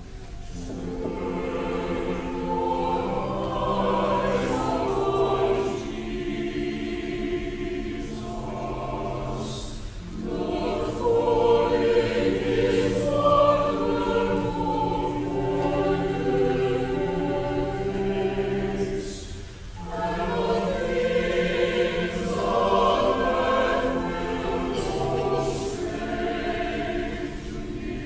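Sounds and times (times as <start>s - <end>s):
church choir singing: 0.0s - 28.0s.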